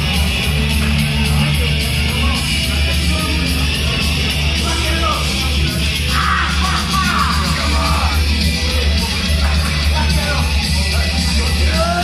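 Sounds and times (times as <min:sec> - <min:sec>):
voice yelling: 0:06.1 - 0:08.2.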